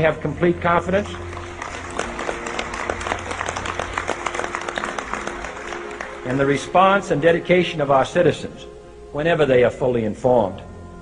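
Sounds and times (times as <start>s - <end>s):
soft background music: 0.0s - 11.0s
audience applauding: 1.0s - 6.7s.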